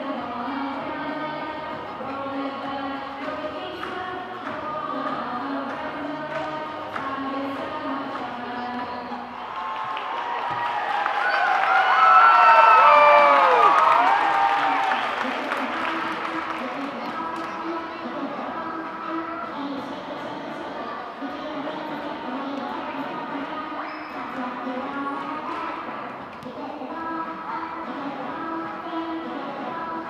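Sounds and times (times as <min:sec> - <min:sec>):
crowd cheering and shouting: 0:09.0 - 0:15.4.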